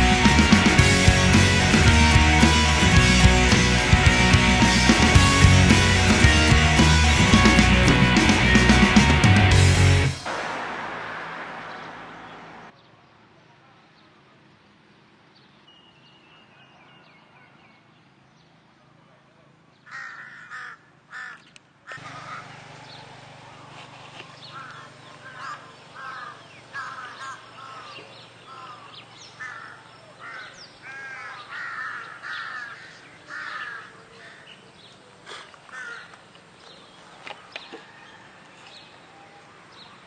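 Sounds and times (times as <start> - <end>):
crows cawing: 19.8 - 22.6, 24.4 - 34.6, 35.2 - 36.3.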